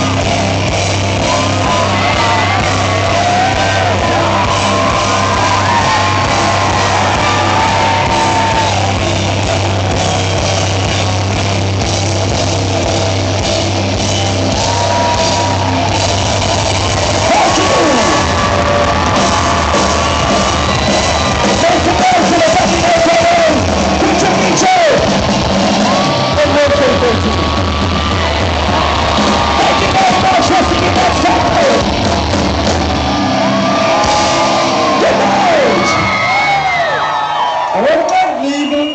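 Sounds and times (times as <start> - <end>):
audience yelling and whooping: 0.0 - 38.9
live rock band: 0.0 - 38.9.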